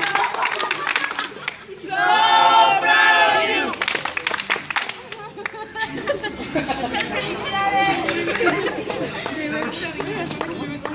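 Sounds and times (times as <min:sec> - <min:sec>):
group of people chattering: 0:01.3 - 0:10.9.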